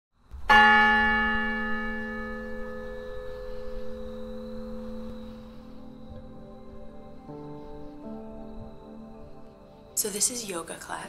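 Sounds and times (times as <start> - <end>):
soft music tones: 0.3 - 11.0
bell ringing: 0.5 - 5.2.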